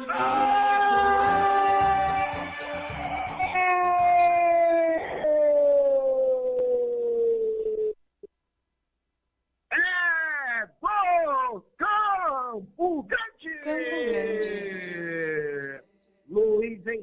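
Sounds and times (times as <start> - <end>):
commentator shouting goal cry: 9.7 - 15.2.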